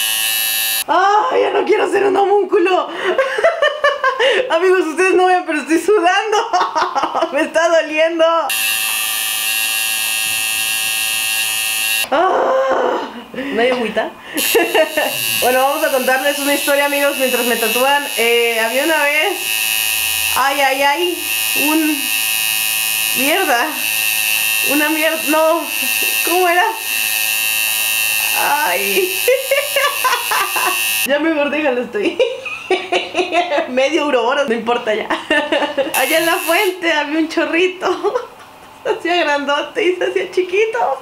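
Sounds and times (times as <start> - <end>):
tattoo machine buzzing: 0.0 - 0.9, 8.5 - 12.1, 14.4 - 31.1, 35.9 - 36.8
woman laughing: 1.0 - 2.0, 2.9 - 4.6, 6.0 - 7.6, 12.1 - 15.7, 28.8 - 30.9, 32.0 - 33.9, 34.9 - 36.5, 37.8 - 39.1.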